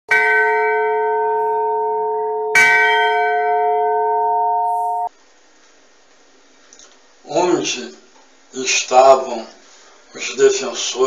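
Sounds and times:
deep bell ringing: 0.1 - 5.1
faint hiss: 5.1 - 11.0.

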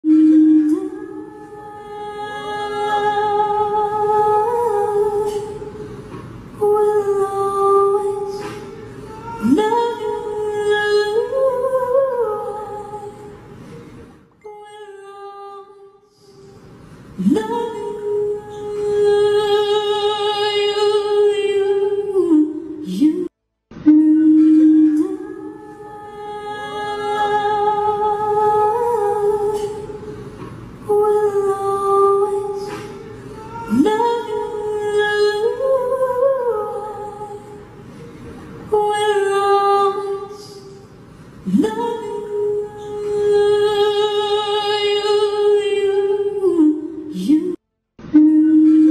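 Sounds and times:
person singing a long note: 0.0 - 5.6, 23.8 - 29.9, 41.5 - 48.9.

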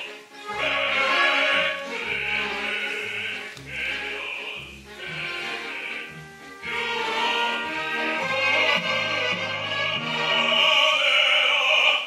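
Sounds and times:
low orchestral notes: 0.0 - 11.2
operatic singing: 0.0 - 12.0.

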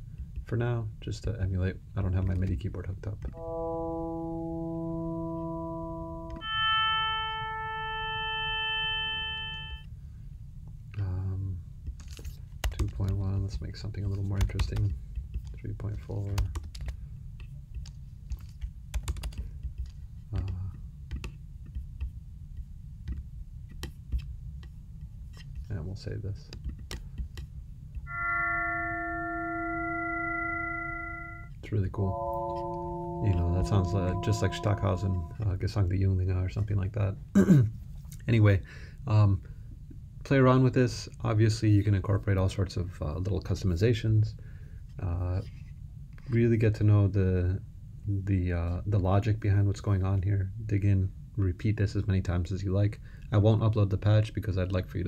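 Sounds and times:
synthesizer notes: 3.3 - 9.8, 28.1 - 35.4.

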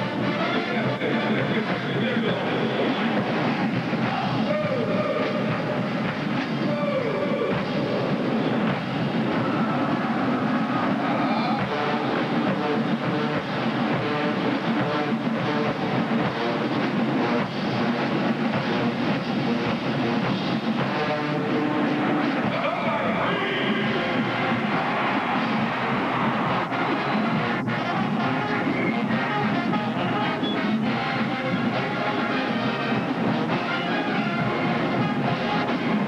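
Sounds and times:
drum beats: 0.0 - 36.0
marching band brass long note: 0.0 - 36.0.

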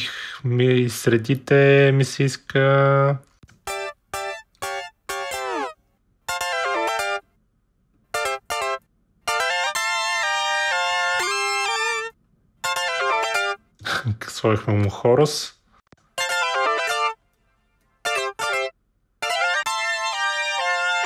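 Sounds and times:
synthesizer chord stabs: 3.6 - 7.2, 8.1 - 13.7, 16.0 - 21.0.

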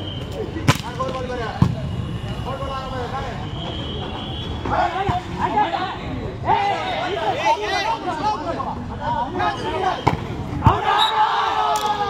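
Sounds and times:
spectators shouting and chatting: 0.0 - 12.0.

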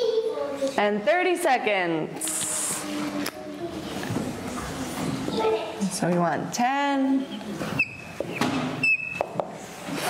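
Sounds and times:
marker squeaking on whiteboard: 7.2 - 9.4.

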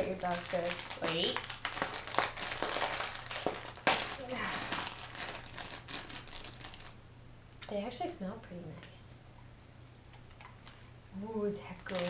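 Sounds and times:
plastic packaging crinkling: 0.0 - 7.0, 11.6 - 12.0.

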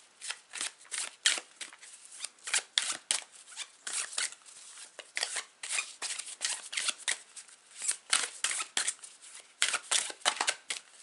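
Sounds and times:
cards being shuffled: 0.2 - 11.0.

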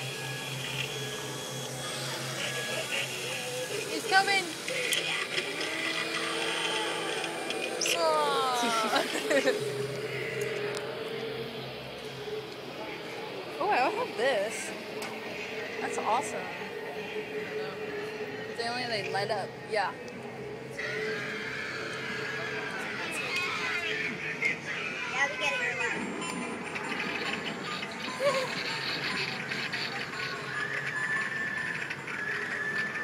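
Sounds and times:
motor whirring: 0.0 - 11.4
high wavering whinny-like cry: 0.1 - 10.6, 20.7 - 25.4.

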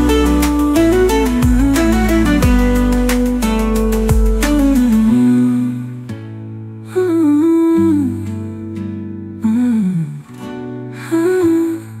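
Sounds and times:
wordless humming vocal: 0.0 - 6.0
acoustic guitar notes: 0.0 - 12.0.

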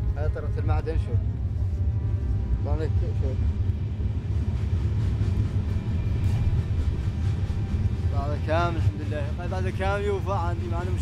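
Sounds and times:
freight train rumbling: 0.0 - 11.0.

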